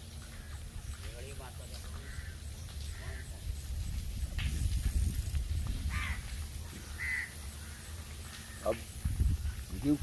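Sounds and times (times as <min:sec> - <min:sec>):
crow cawing: 0:01.9 - 0:03.3, 0:05.9 - 0:08.7.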